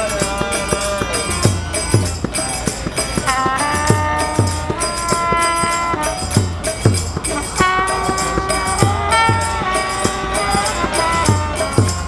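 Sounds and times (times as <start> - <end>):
hand cymbals striking: 0.0 - 12.0
harmonium sustained chord: 0.2 - 12.0.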